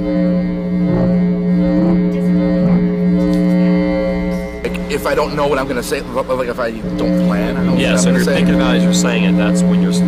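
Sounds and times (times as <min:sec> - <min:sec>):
low musical drone: 0:00.0 - 0:10.0.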